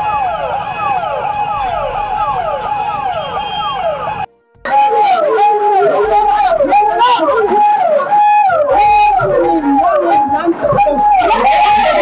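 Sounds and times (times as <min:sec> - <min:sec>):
electronic siren sweeping: 0:00.0 - 0:04.3.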